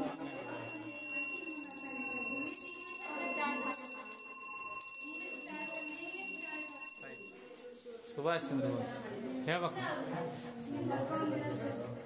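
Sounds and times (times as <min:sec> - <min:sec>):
children's voices: 0:00.0 - 0:06.8, 0:09.7 - 0:12.0.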